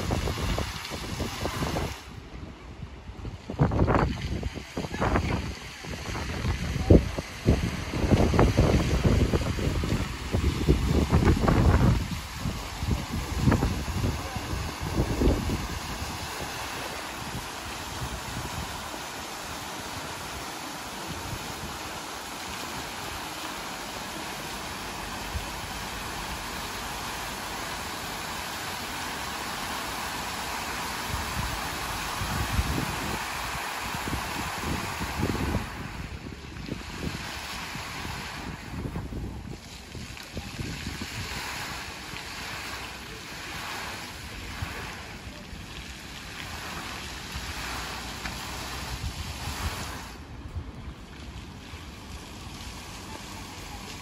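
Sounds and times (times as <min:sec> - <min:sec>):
wind buffeting microphone: 0:00.0 - 0:23.2, 0:31.0 - 0:42.7, 0:46.5 - 0:51.6
fountain water splashing: 0:00.0 - 0:54.0.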